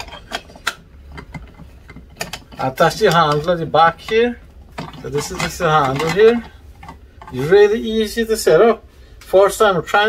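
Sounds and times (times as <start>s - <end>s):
metal grater drum clicking and rattling: 0.0s - 7.5s.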